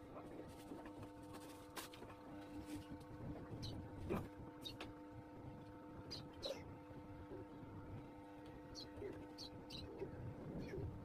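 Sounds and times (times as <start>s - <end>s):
faint steady hum: 0.0s - 11.0s.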